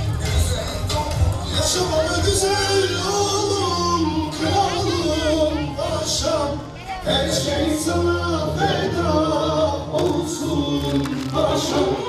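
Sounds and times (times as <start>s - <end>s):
person singing: 0.0s - 12.0s.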